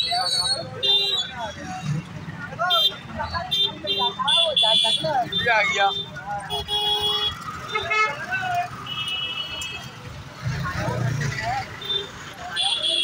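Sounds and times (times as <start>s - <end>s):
street traffic: 0.0s - 13.0s
vehicle horn honks: 2.7s - 8.2s.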